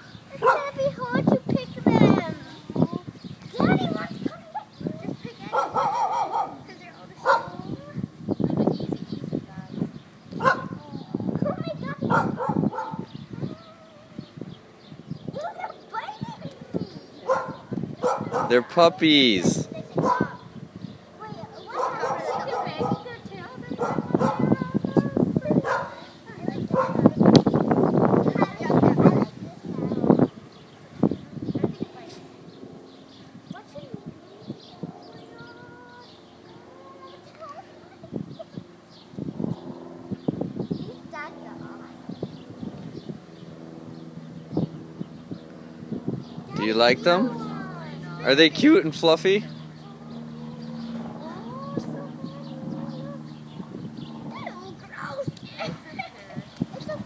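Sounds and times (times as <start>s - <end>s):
children's excited voices: 0.0s - 9.4s, 10.4s - 14.5s, 15.2s - 30.4s, 46.2s - 57.0s
puppies barking: 0.4s - 1.0s, 5.4s - 7.8s, 10.4s - 10.8s, 11.6s - 13.6s, 17.2s - 20.5s, 21.6s - 24.8s, 25.5s - 27.1s
puppies barking and whining: 0.4s - 2.2s, 3.6s - 7.8s, 10.4s - 14.4s, 15.3s - 20.6s, 21.2s - 27.2s, 46.1s - 57.0s.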